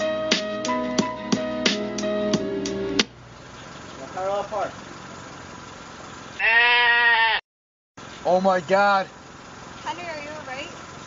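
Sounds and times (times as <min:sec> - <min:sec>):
low car engine hum: 0:00.0 - 0:06.6, 0:08.0 - 0:11.0
sheep bleating: 0:06.4 - 0:07.4.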